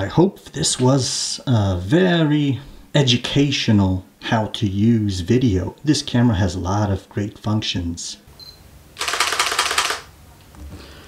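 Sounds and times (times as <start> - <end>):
camera shutter firing: 9.0 - 10.1.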